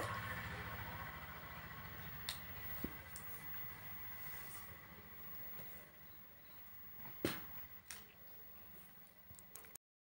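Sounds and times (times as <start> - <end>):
faint low machine hum: 0.0 - 9.8.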